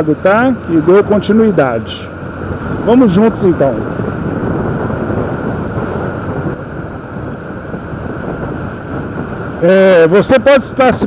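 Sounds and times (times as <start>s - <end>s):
motorcycle engine: 0.0s - 10.8s
road noise: 0.0s - 11.0s
wind rushing over microphone: 0.0s - 11.0s.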